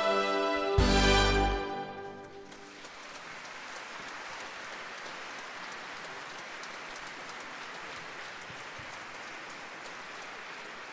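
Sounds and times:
audience applauding: 0:01.2 - 0:10.9.

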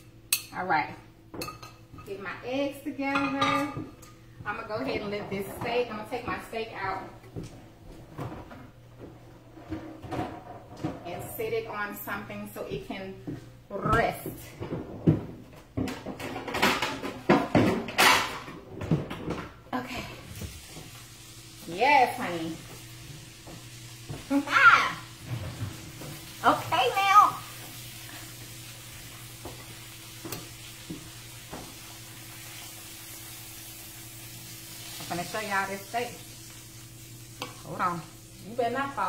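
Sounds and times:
dishes and utensils clattering: 0:03.1 - 0:04.2, 0:15.8 - 0:19.5
eggs sizzling in a skillet: 0:20.1 - 0:39.0.

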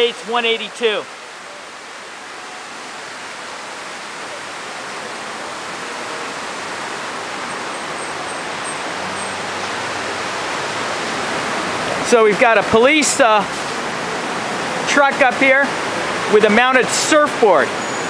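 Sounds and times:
fountain water rushing: 0:00.0 - 0:18.0.

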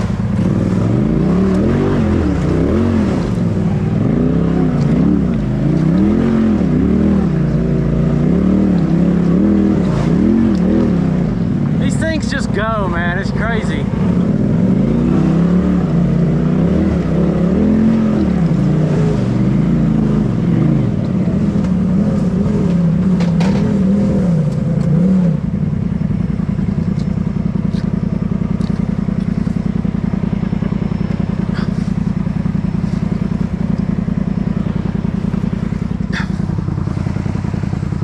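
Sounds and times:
off-road vehicle engine revving: 0:00.0 - 0:38.0.

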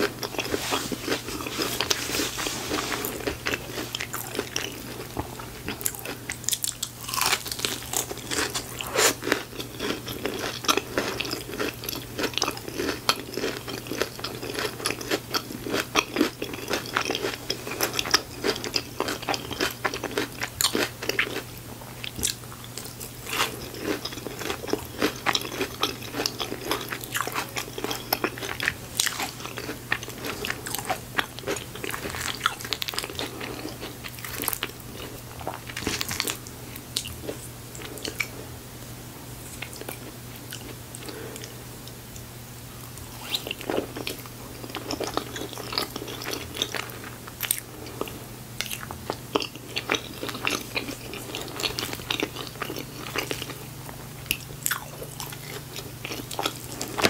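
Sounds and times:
crunching and chewing crispy food: 0:00.0 - 0:38.6, 0:39.4 - 0:57.0
faint low hum: 0:00.0 - 0:57.0.

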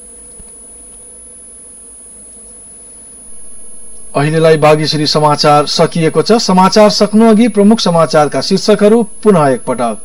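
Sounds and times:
electrical hum and buzz: 0:00.0 - 0:10.0.

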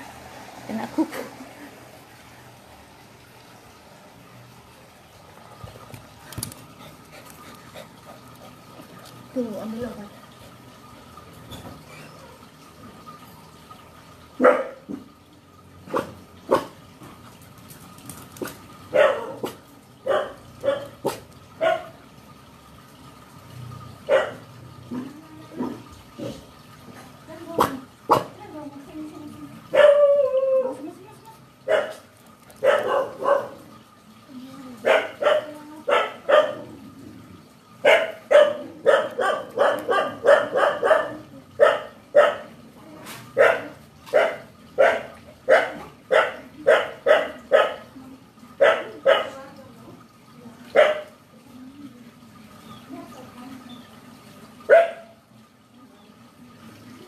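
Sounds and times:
dog barking: 0:14.4 - 0:14.8, 0:15.9 - 0:16.8, 0:18.9 - 0:22.0, 0:24.1 - 0:24.5, 0:27.6 - 0:28.3, 0:29.7 - 0:30.0, 0:31.6 - 0:32.0, 0:32.6 - 0:33.6, 0:34.8 - 0:36.7, 0:37.8 - 0:42.5, 0:43.4 - 0:47.9, 0:48.6 - 0:49.4, 0:50.7 - 0:51.1, 0:54.7 - 0:55.2.

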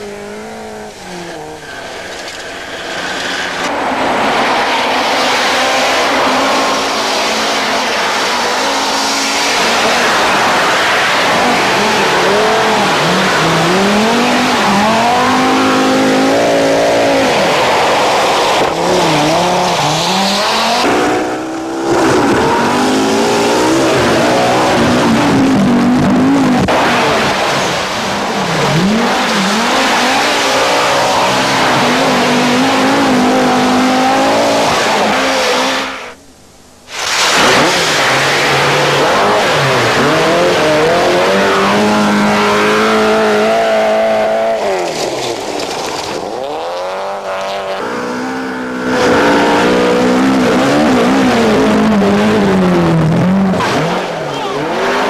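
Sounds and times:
rally car engines revving hard: 0:00.0 - 0:36.2, 0:36.9 - 0:55.0.

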